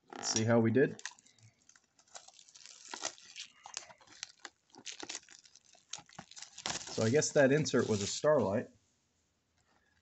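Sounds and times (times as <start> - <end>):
plastic wrap crinkling and tearing: 0.0 - 8.6.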